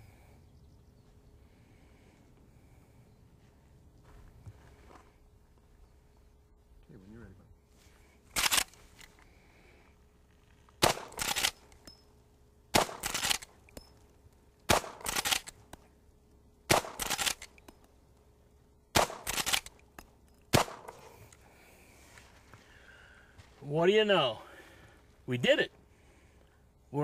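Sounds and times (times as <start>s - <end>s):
rifle shots: 10.8s - 11.6s, 12.7s - 13.5s, 14.7s - 15.6s, 16.7s - 17.4s, 18.9s - 19.7s, 20.5s - 21.1s.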